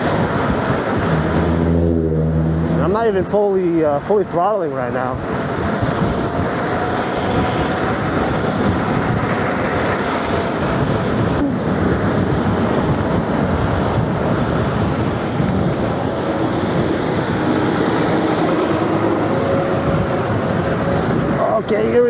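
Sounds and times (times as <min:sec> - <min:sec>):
road and tyre noise: 0:00.0 - 0:22.0
wind on microphone: 0:00.0 - 0:22.0.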